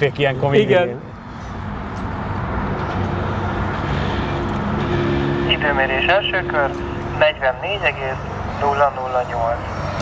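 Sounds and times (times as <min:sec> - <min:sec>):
men talking: 0:00.0 - 0:01.2, 0:05.5 - 0:09.8
vehicle engine drone: 0:00.0 - 0:10.0.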